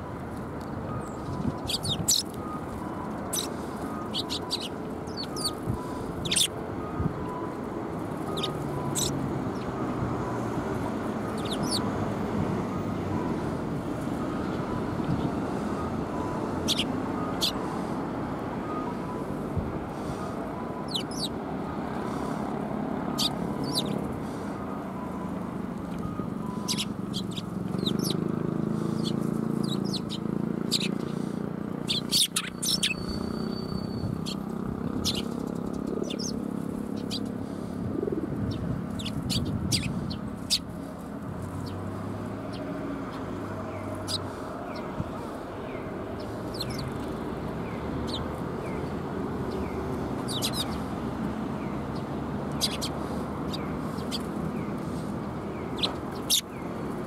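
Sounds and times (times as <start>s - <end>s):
sparrows chirping: 0.8s - 6.6s, 8.0s - 12.2s, 16.4s - 17.9s, 19.9s - 24.6s, 25.5s - 37.7s, 38.4s - 40.8s, 41.4s - 57.0s.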